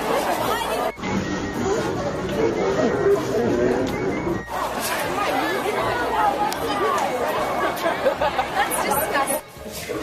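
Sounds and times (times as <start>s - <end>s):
young voices chattering: 0.0s - 10.0s.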